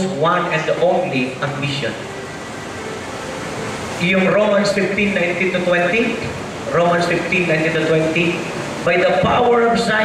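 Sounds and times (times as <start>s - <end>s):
background room noise hiss: 0.0s - 10.0s.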